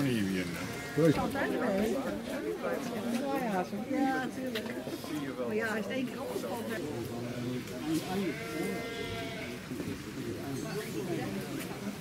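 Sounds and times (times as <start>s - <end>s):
people talking: 0.0s - 12.0s
farm animal bleating: 0.2s - 1.5s, 4.7s - 5.4s, 7.7s - 9.7s.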